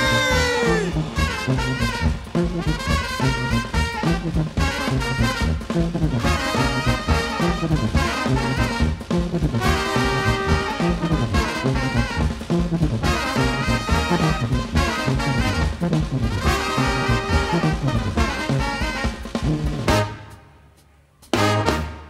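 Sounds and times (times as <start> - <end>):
sousaphone bass line: 0.0 - 18.4
saxophone: 0.0 - 20.4
trombones: 0.0 - 20.6, 21.3 - 22.0
drum kit: 0.0 - 22.0
trumpet: 0.0 - 22.0.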